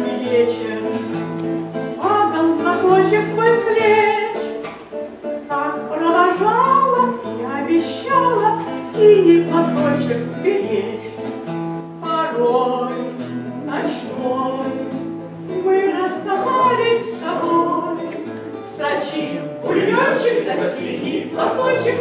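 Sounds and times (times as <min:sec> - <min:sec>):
person singing: 0:00.0 - 0:04.7, 0:05.5 - 0:11.4, 0:12.0 - 0:22.0
acoustic guitar: 0:00.0 - 0:22.0.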